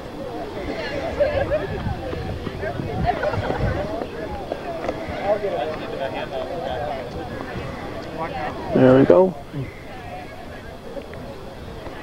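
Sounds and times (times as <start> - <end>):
chatter of people: 0.0 - 12.0.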